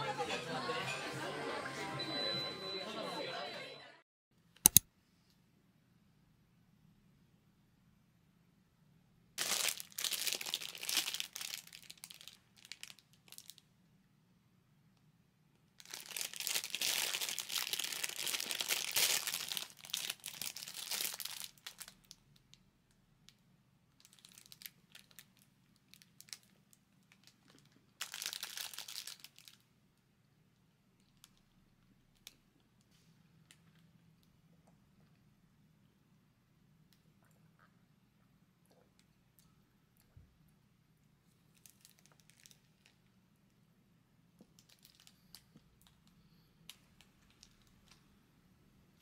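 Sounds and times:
plastic wrapping crinkling: 9.4 - 13.6, 15.8 - 22.1, 24.0 - 29.6, 41.5 - 43.0, 44.6 - 45.9.

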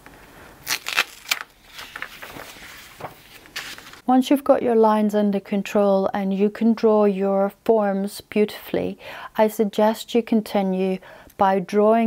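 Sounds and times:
masking tape peeling: 0.6 - 4.0
paper rustling: 0.6 - 4.0.

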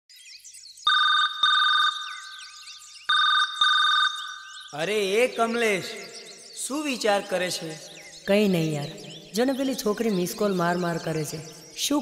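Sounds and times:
faint high chirping: 0.1 - 12.0.

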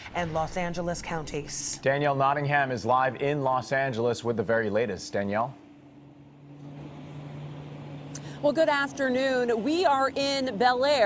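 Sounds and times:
low mechanical hum: 0.0 - 11.0
outdoor background noise: 0.0 - 11.0.

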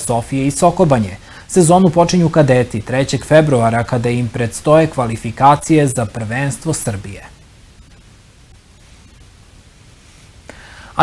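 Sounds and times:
man's voice: 0.0 - 7.4
faint background noise: 0.0 - 11.0.

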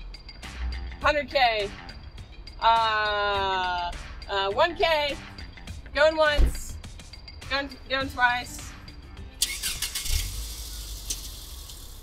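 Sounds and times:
car engine starting and running: 0.3 - 12.0.

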